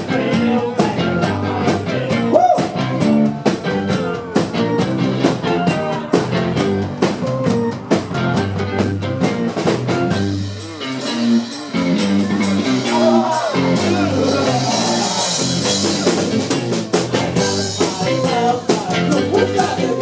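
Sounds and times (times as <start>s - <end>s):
drum beat: 0.0s - 20.0s
garage band playing: 0.0s - 20.0s
keyboard: 0.0s - 20.0s.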